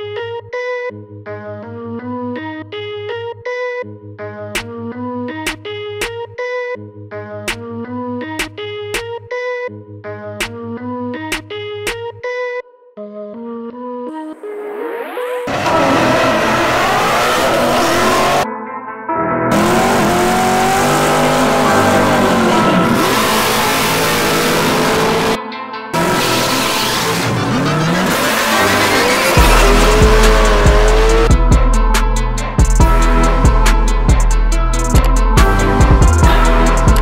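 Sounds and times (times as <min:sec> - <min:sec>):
background music: 0:00.0 - 0:37.0
race engines revving: 0:15.5 - 0:18.4, 0:19.5 - 0:25.4, 0:26.0 - 0:31.3
heavy bass beat: 0:27.3 - 0:37.0.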